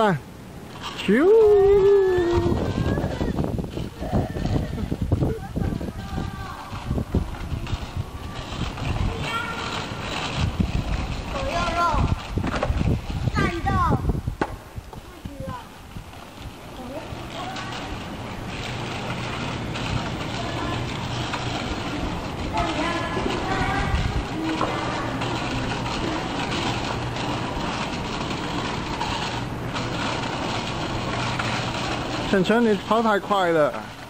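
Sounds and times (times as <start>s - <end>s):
bicycle rolling over concrete: 0.0s - 34.0s
faint voices: 0.9s - 12.4s, 15.0s - 32.8s.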